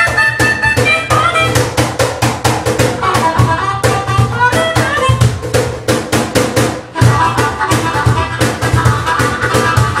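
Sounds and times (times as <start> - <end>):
harmonica melody: 0.0 - 1.8, 2.9 - 5.4, 6.8 - 10.0
hand percussion beat: 0.0 - 10.0.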